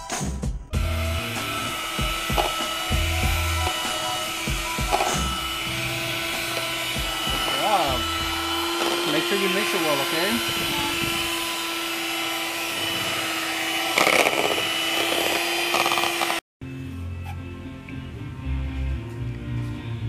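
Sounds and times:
background music with a beat: 0:00.0 - 0:08.6
electric hand mixer whirring: 0:00.8 - 0:16.4.

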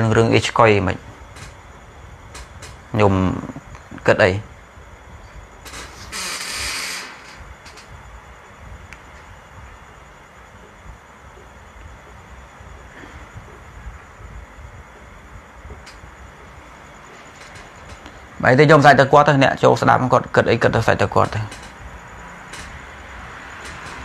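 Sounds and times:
low rumble and hiss: 0:00.0 - 0:24.0.

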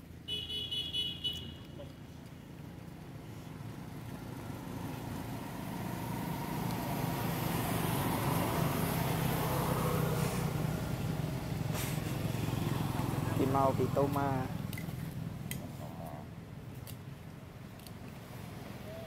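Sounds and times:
vehicle engine humming: 0:00.0 - 0:19.0.

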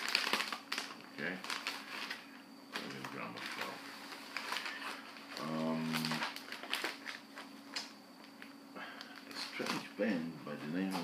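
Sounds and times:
record sleeve crinkling: 0:00.0 - 0:09.9.

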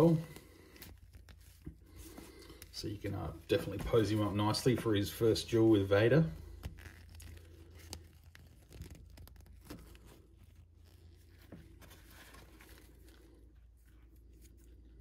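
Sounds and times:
fingers rubbing fabric and plastic: 0:00.0 - 0:04.8, 0:06.3 - 0:15.0.

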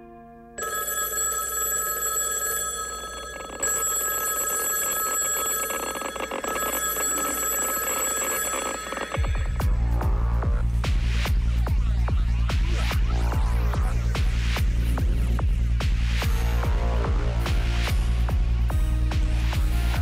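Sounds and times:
telephone bell ringing: 0:00.6 - 0:09.8
loud deep electronic music: 0:09.2 - 0:20.0.

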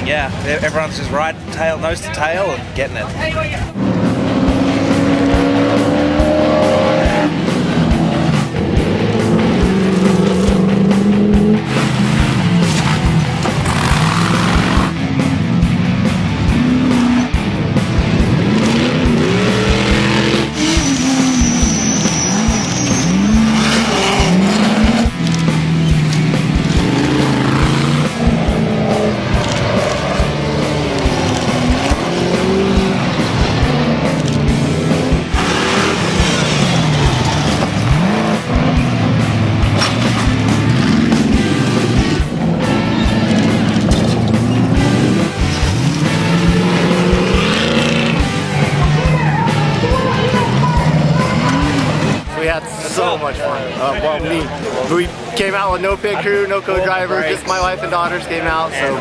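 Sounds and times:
background music: 0:00.0 - 0:59.0
race car engines revving and passing: 0:00.0 - 0:59.0.

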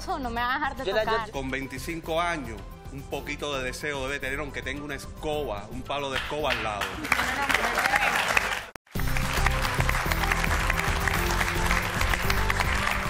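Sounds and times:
show music: 0:00.9 - 0:13.0
studio audience applauding: 0:06.0 - 0:13.0.

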